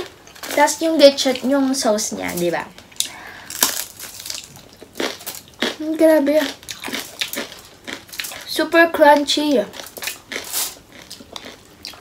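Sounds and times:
crispy skin crunching when chewed: 3.0 - 8.6, 9.7 - 12.0.

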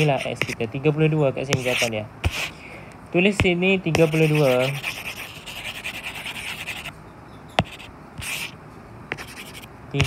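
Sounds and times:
stylus scratching on tablet: 0.0 - 0.6, 1.5 - 2.5, 3.4 - 6.9, 7.6 - 10.0.

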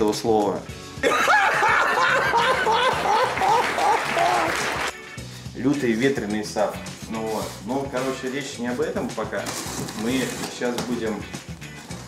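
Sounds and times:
man laughing loudly: 1.0 - 4.7.

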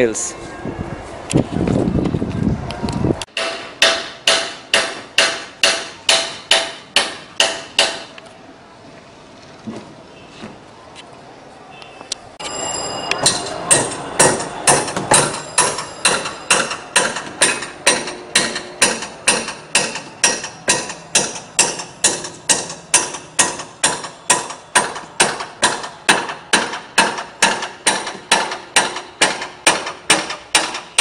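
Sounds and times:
hammer driving nails: 3.3 - 8.1, 13.2 - 31.0.

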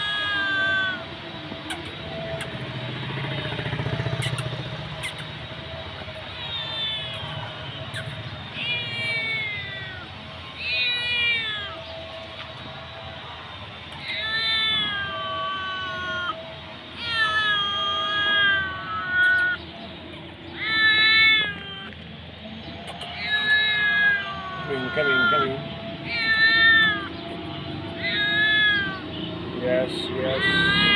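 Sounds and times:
kitten meowing: 0.0 - 1.0, 4.2 - 5.4, 6.3 - 11.8, 14.0 - 16.4, 17.0 - 19.6, 20.6 - 22.0, 22.9 - 27.2, 27.9 - 29.0, 30.2 - 30.9.

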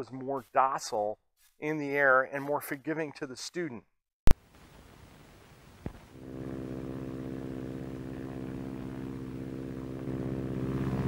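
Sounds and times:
aircraft engine droning in flight: 6.2 - 11.0.

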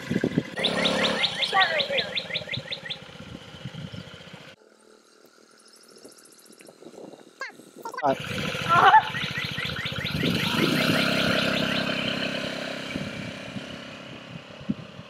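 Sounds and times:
scooter engine running: 0.0 - 4.6, 8.0 - 15.0
bird trilling: 0.5 - 4.4, 7.4 - 13.2.

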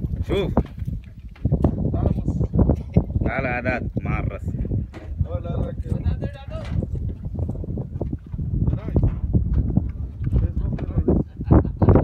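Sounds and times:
wind rumble on microphone: 0.0 - 12.0
people talking: 3.2 - 4.4, 10.4 - 11.4.

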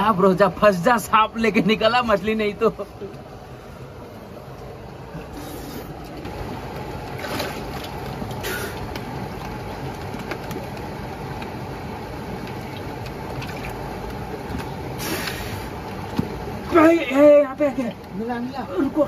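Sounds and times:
water splashes: 6.1 - 10.7, 12.3 - 16.9.

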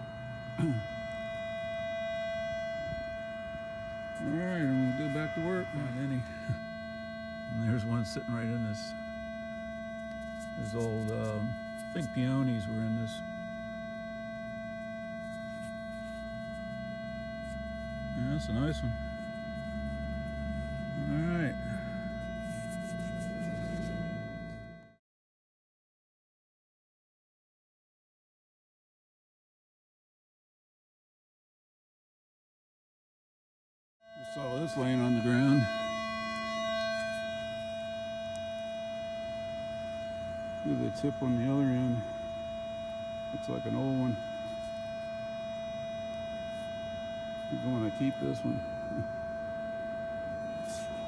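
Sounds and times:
low hum: 0.0 - 25.0, 34.2 - 51.0
steady electronic tone: 0.0 - 25.0, 34.1 - 51.0.

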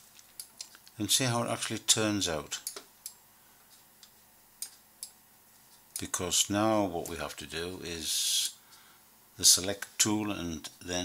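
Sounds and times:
computer mouse clicks: 2.6 - 5.2.

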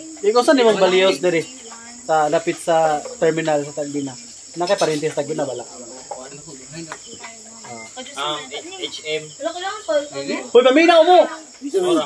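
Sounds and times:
crickets chirring: 0.0 - 12.0
people talking: 0.0 - 12.0.

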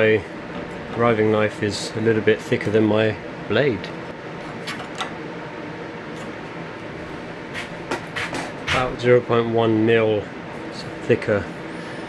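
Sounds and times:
air scrubber humming: 0.0 - 12.0.

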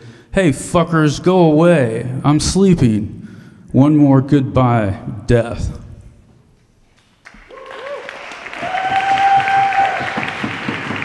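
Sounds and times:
audience applause: 7.2 - 11.0
person whooping in crowd: 7.3 - 11.0.

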